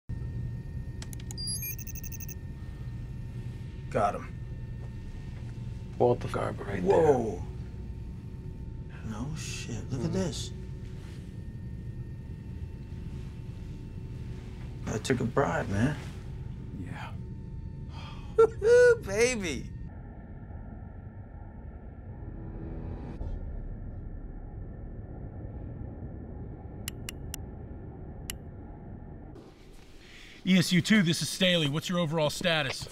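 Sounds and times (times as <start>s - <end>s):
low steady rumble: 0.1s - 32.2s
steady low hum: 0.1s - 32.9s
sharp clicks: 1.0s - 2.4s, 26.9s - 27.4s
high electronic beeps and chirps: 1.3s - 2.4s.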